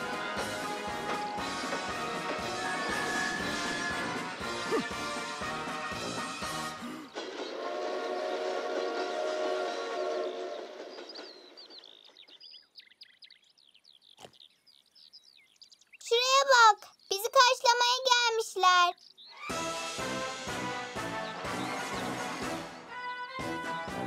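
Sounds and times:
cartoon train horn chord: 0.0s - 10.9s, 19.5s - 24.0s.

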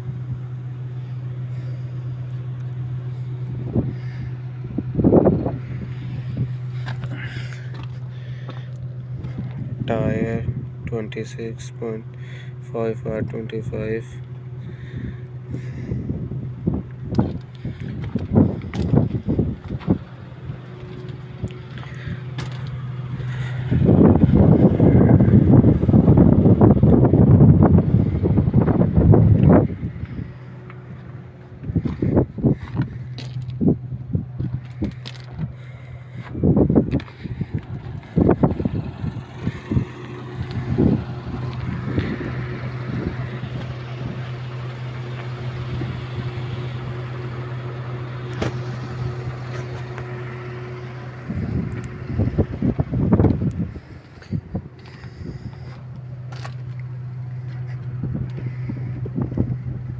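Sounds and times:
diesel engine running: 0.0s - 59.9s
wind buffeting microphone: 3.4s - 10.9s, 14.6s - 44.6s, 51.2s - 59.9s.

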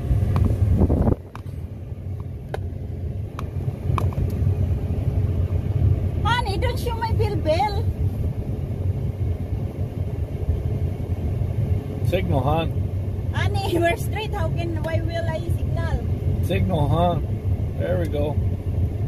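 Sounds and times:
pickup truck rumble from inside: 0.0s - 19.0s.

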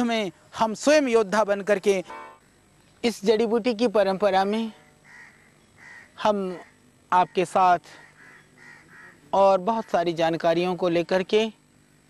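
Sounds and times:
faint bird calls: 4.7s - 10.1s
man speaking a syllable: 9.3s - 11.6s.

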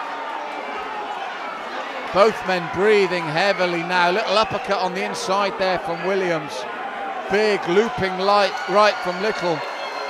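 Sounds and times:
crowd chatter and shouting: 0.0s - 10.0s.

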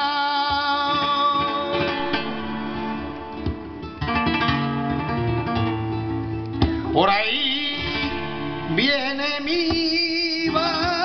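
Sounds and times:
flamenco acoustic guitar: 0.0s - 11.0s
sharp guitar strum: 0.0s - 11.0s.

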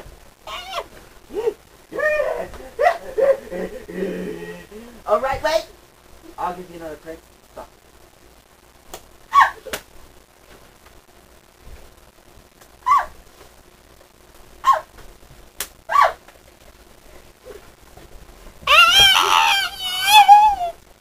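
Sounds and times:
person yelping: 0.5s - 4.7s, 9.3s - 9.6s, 12.8s - 13.2s, 15.9s - 16.2s, 18.7s - 20.8s
person screaming: 18.7s - 20.8s.

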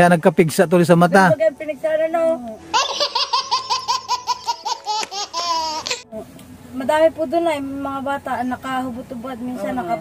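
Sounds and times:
baby laughing: 2.7s - 6.0s.

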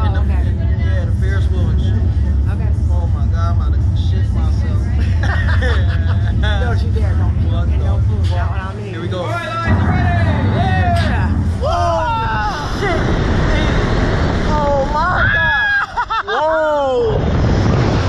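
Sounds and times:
steady low rumble: 0.0s - 18.0s
people laughing and exclaiming: 5.0s - 6.8s, 9.6s - 13.9s, 14.5s - 17.2s
people shrieking: 11.6s - 13.0s, 14.8s - 17.2s.

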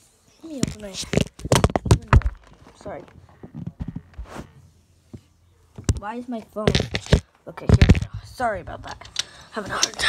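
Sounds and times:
light knocks and thumps: 0.6s - 4.5s.

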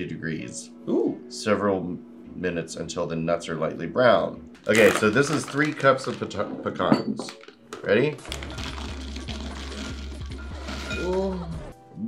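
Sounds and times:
nuts pattering into glass bowl: 4.6s - 6.4s, 7.2s - 11.2s
background music with bass: 8.2s - 12.0s.

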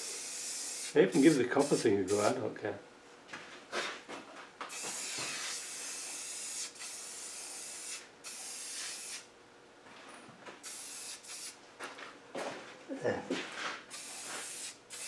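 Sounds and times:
spray paint can hissing: 0.0s - 2.2s, 4.7s - 9.3s, 10.6s - 11.6s, 13.9s - 15.0s.

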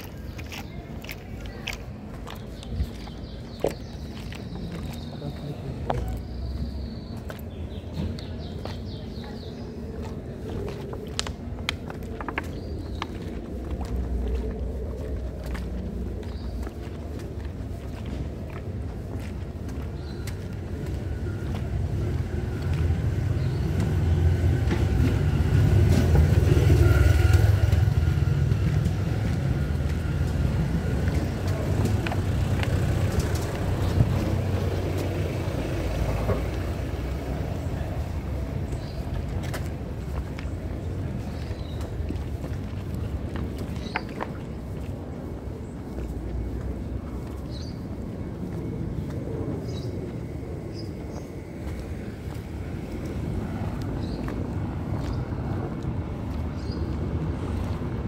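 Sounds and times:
footsteps: 0.0s - 50.3s
car driving on cobblestones: 0.0s - 58.0s.

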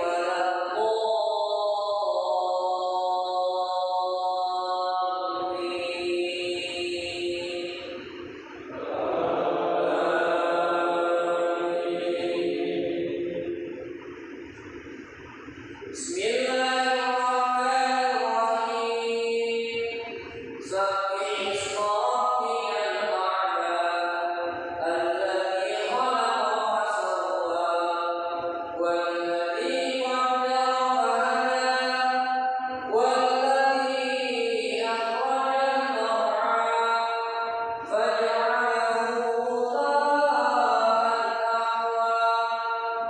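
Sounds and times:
man chanting recitation: 0.0s - 14.7s, 15.6s - 43.0s.

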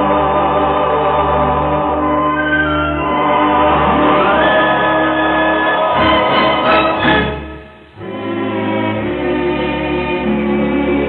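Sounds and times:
dance orchestra playing: 1.9s - 9.1s.

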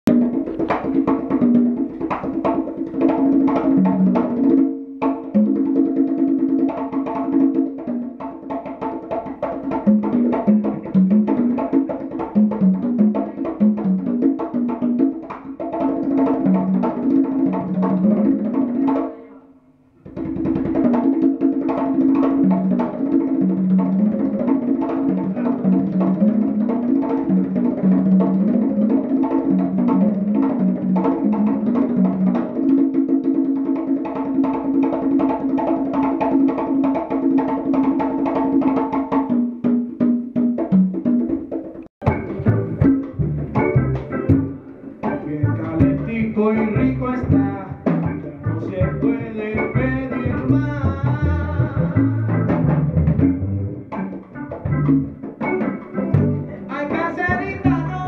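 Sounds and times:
conga drums: 0.0s - 58.0s
electric guitar: 42.0s - 58.0s
upright bass: 42.0s - 58.0s.

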